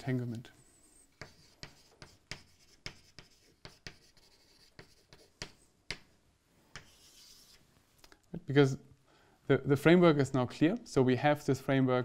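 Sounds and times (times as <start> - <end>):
chalk writing on blackboard: 0.7 - 6.1, 6.7 - 7.6.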